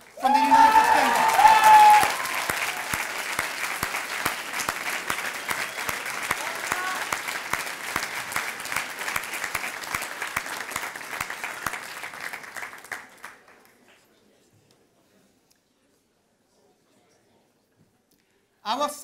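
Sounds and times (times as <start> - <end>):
audience applauding: 0.0 - 13.8.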